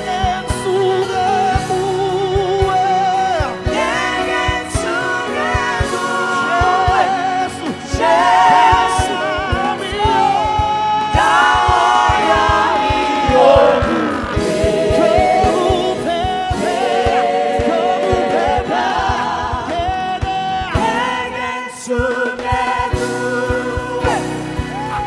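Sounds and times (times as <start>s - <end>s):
vocal group singing gospel: 0.0s - 25.0s
low steady beat: 11.2s - 16.7s.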